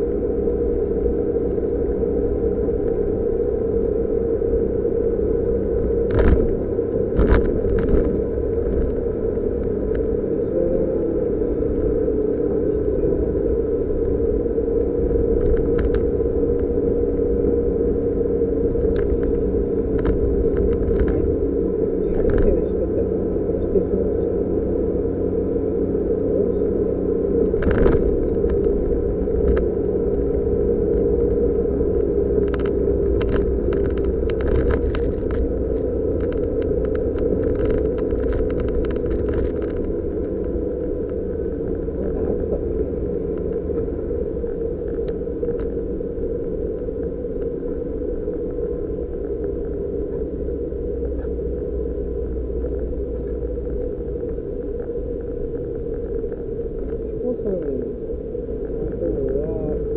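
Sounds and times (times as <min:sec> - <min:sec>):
car engine droning: 0:00.0 - 0:59.9
road rumble: 0:00.0 - 0:59.9.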